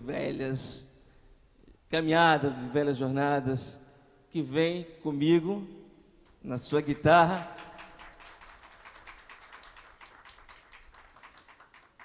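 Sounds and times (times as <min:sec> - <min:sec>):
faint audience applause: 0:07.0 - 0:12.0.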